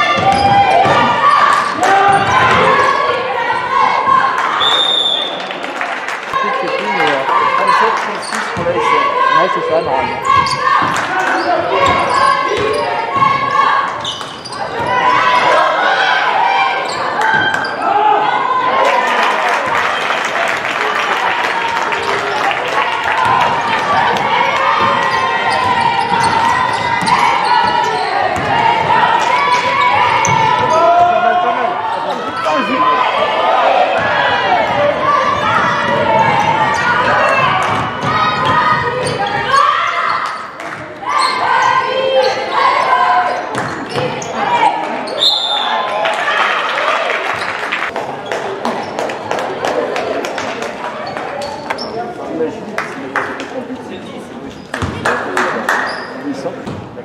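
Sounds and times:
voices calling out in a hall: 0:00.0 - 0:57.0.

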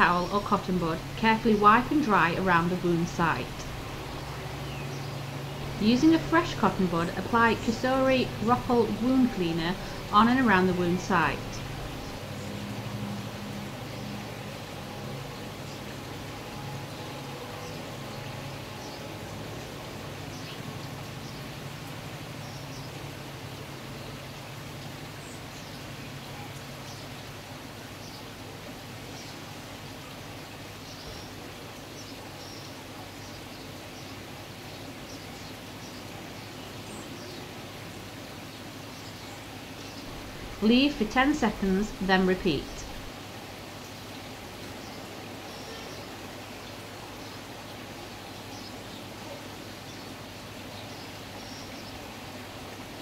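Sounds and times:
low hum: 0:00.0 - 0:20.3, 0:40.0 - 0:43.2.

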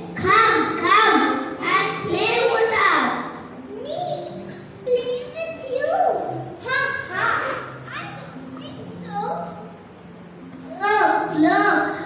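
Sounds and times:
children speaking into microphones: 0:00.0 - 0:12.0.

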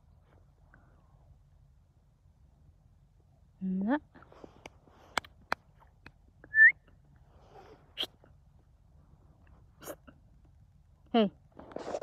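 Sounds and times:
sharp rising whistle: 0:06.5 - 0:06.8.

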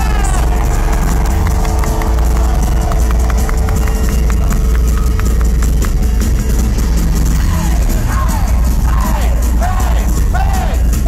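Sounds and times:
live pop-punk band: 0:00.0 - 0:11.0.

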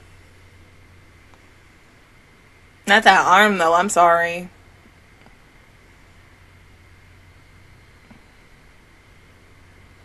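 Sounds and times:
faint steady hum and hiss: 0:00.0 - 0:10.0
woman speaking: 0:02.9 - 0:04.5.

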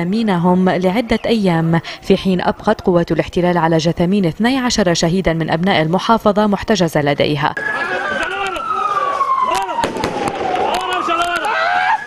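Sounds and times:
shouting voices: 0:07.6 - 0:12.0
siren wailing: 0:07.6 - 0:12.0
sharp cracks: 0:09.5 - 0:12.0.

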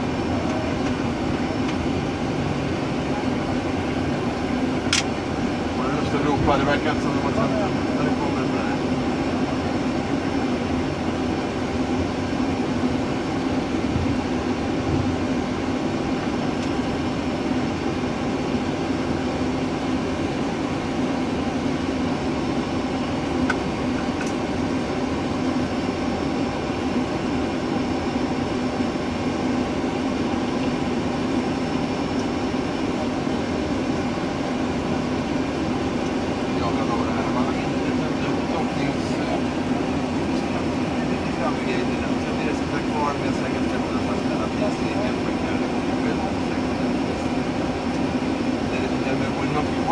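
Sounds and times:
air conditioning running: 0:00.0 - 0:49.9
constant low hum: 0:00.0 - 0:49.9
jet engines idling: 0:00.0 - 0:49.9.

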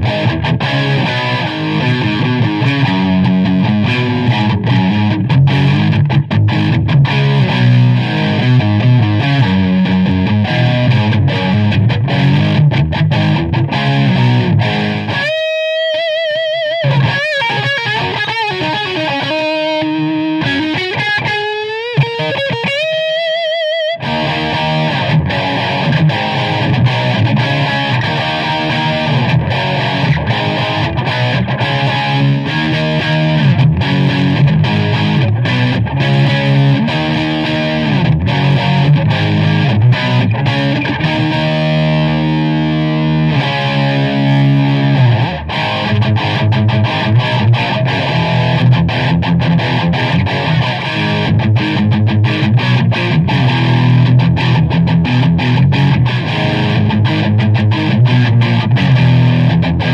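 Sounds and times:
overdriven electric guitar: 0:00.0 - 0:59.9.

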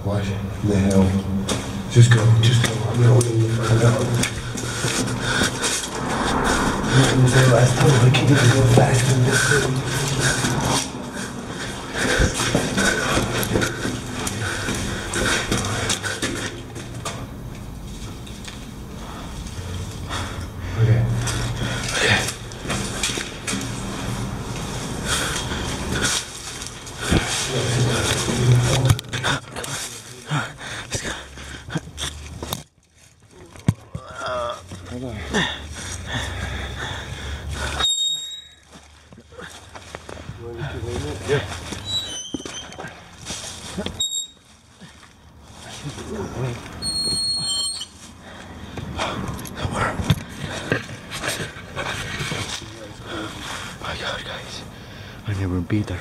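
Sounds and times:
indistinct voices: 0:00.0 - 0:32.6, 0:33.2 - 0:38.4, 0:45.5 - 0:56.0
footsteps: 0:01.4 - 0:20.4, 0:21.1 - 0:30.3, 0:38.1 - 0:53.7.

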